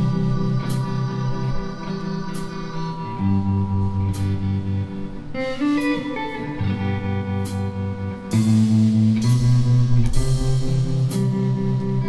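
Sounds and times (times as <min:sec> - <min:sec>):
blues band playing: 0:00.0 - 0:12.0
electric guitar notes: 0:00.0 - 0:12.0
cymbal hits: 0:07.4 - 0:12.0.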